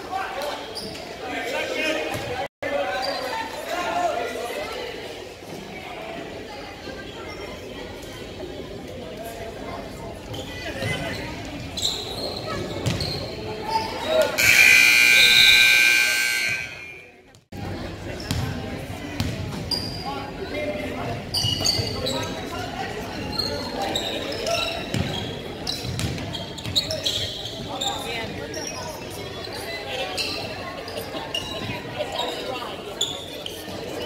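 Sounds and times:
sneakers squeaking: 0.5s - 1.4s, 6.9s - 7.8s, 10.2s - 17.2s, 18.0s - 20.4s, 21.0s - 34.0s
scoreboard buzzer: 14.4s - 17.1s.

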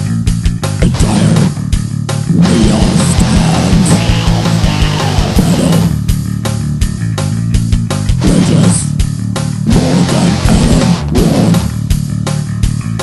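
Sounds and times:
death metal music: 0.0s - 13.0s.

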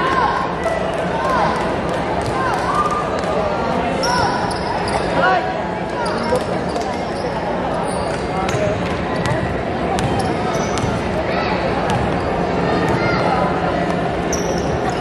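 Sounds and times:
spectators chattering: 0.0s - 15.0s
sneakers squeaking: 4.0s - 5.2s, 5.9s - 15.0s
basketball bouncing: 9.2s - 9.4s, 10.0s - 11.1s, 11.9s - 12.2s.

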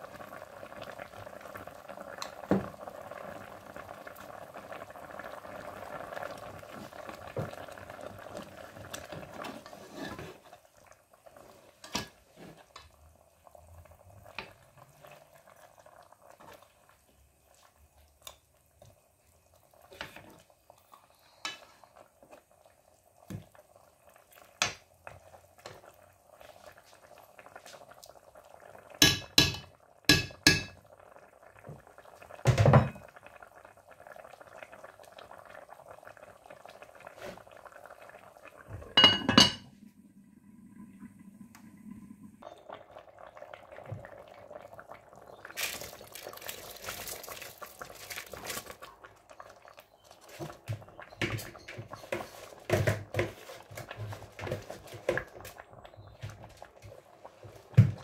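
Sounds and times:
stew bubbling in a pot: 0.0s - 58.0s
spoon scraping a pot: 9.4s - 10.5s
metal clanking on a pot: 29.0s - 30.8s.

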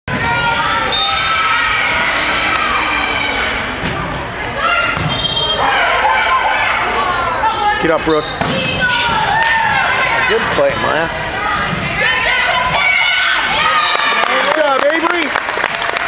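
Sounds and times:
players and spectators calling out: 0.1s - 15.3s
volleyball hits: 3.6s - 5.4s.

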